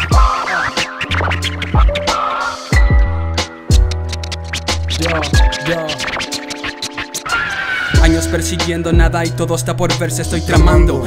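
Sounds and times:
dj scratching: 0:00.0 - 0:02.8, 0:03.4 - 0:11.0
hip hop beat with deep bass: 0:00.0 - 0:11.0
kick drums: 0:09.0 - 0:09.2, 0:10.6 - 0:11.0.

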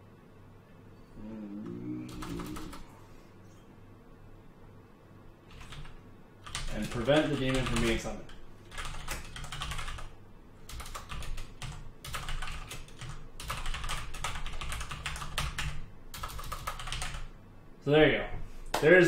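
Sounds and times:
computer keyboard typing: 0:02.0 - 0:02.8, 0:05.5 - 0:17.4.

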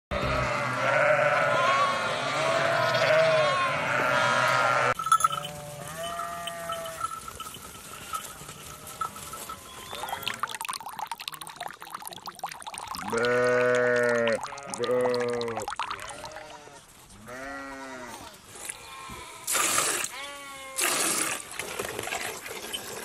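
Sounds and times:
sheep bleating: 0:00.1 - 0:07.1, 0:13.0 - 0:19.5, 0:20.1 - 0:20.8.

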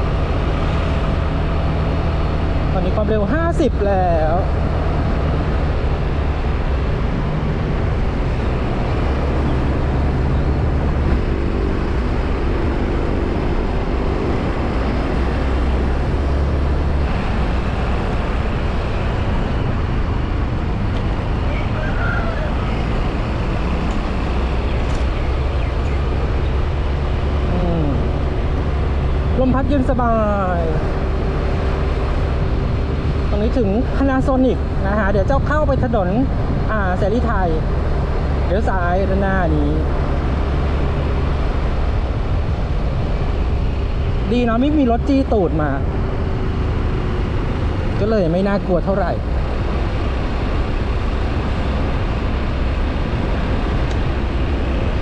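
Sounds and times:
wind and road noise rumble: 0:00.0 - 0:55.0
faint scooter engine hum: 0:27.4 - 0:31.3.

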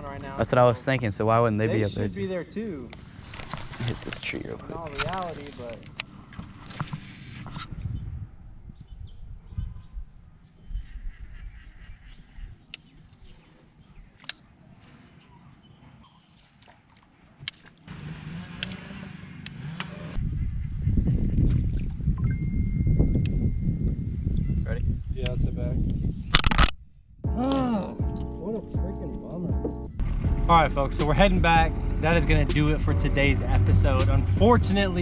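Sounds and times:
wind rumble on microphone: 0:07.4 - 0:12.6, 0:20.1 - 0:26.7.

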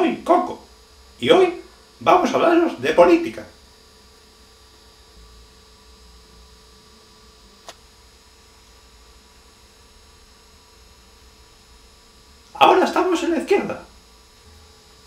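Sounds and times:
electrical hum: 0:00.0 - 0:15.0.

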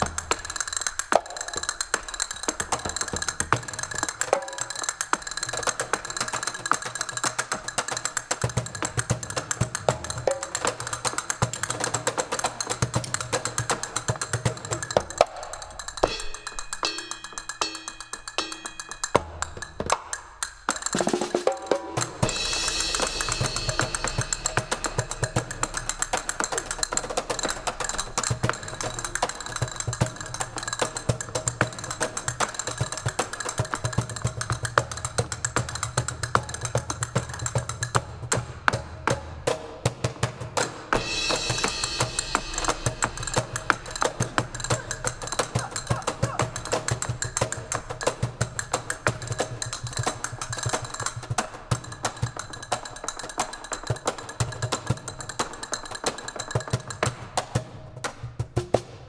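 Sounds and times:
djembe hand-drum beats: 0:00.0 - 0:59.0.

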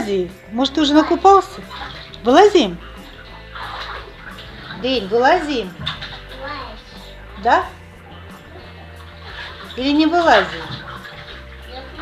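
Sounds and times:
bathwater sloshing: 0:00.0 - 0:12.0.

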